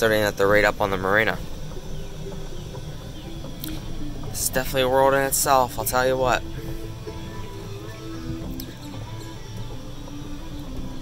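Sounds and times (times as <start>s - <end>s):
faint music: 0.0s - 11.0s
golf cart motor and tyres rumbling: 0.0s - 11.0s.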